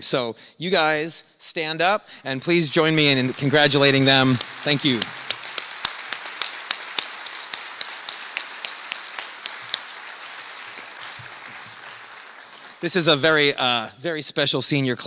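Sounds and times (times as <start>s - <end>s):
audience applauding: 2.5s - 13.6s
sharp single claps: 4.3s - 12.8s.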